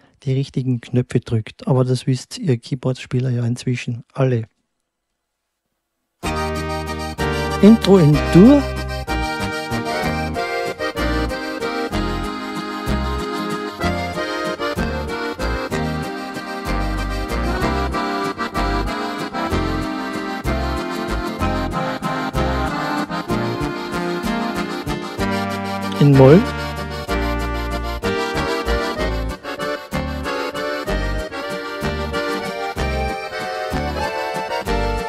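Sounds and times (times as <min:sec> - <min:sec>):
bass and rhythm accompaniment: 0:06.2 - 0:35.0
keyboard accordion waltz: 0:06.2 - 0:35.0.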